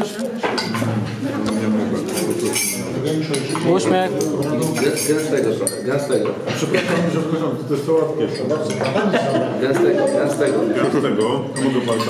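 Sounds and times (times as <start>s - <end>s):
dishes and cutlery clinking: 0.0s - 12.0s.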